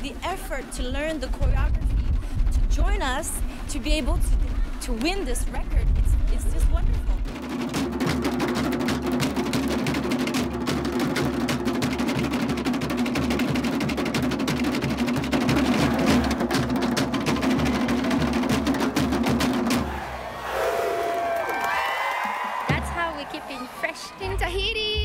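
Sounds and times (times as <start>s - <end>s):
steady low drum: 0.3s - 20.2s, 22.5s - 23.3s
rapid slit drum rolls: 0.8s - 20.6s.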